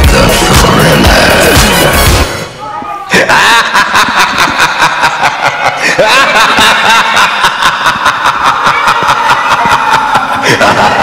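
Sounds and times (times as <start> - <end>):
children shouting and laughing: 2.6 - 11.0.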